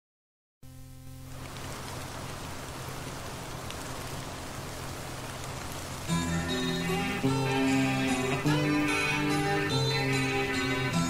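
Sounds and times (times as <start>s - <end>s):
low steady drone: 0.6s - 11.0s
rain falling: 0.8s - 11.0s.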